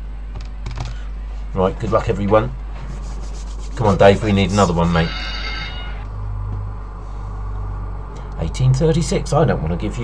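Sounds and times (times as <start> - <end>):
steady low hum: 0.0 - 10.0
high electronic chime: 4.9 - 6.1.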